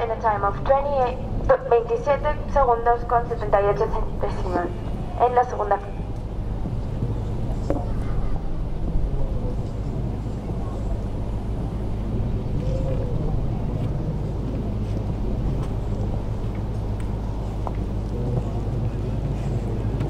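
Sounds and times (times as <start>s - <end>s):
low rumble: 0.0s - 20.0s.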